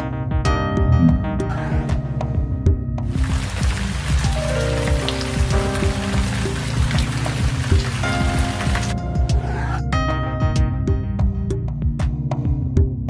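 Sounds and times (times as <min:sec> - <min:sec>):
background music: 0:00.0 - 0:13.0
rain falling: 0:03.1 - 0:09.0.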